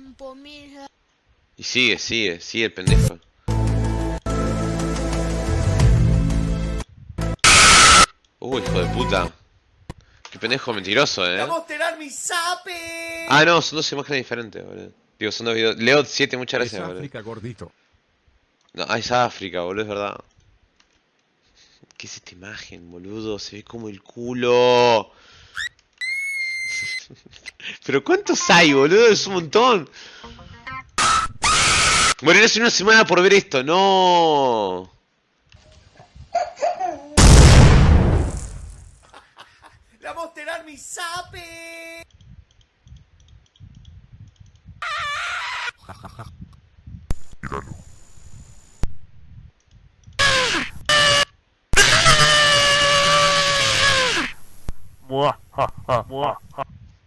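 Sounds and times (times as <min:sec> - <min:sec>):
short rising squeak: 0:25.6 - 0:27.0.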